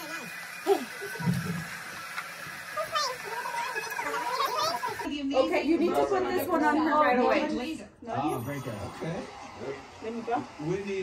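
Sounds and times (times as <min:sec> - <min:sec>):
children's voices: 0:02.8 - 0:05.1.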